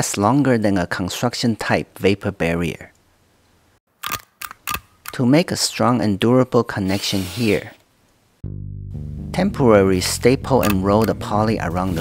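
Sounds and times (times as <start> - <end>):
sharp clicks: 10.6 - 11.2.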